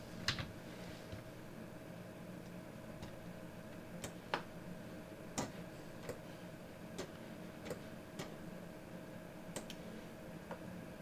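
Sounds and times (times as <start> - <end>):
faint steady hum: 0.0 - 11.0
computer mouse clicks: 9.5 - 9.8.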